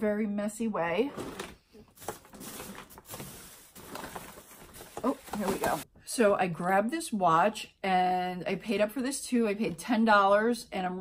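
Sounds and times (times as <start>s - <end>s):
rummaging through items: 0.9s - 5.9s.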